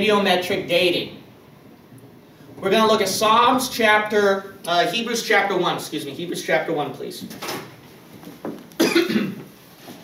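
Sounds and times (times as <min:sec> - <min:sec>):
person coughing: 0:08.8 - 0:09.5.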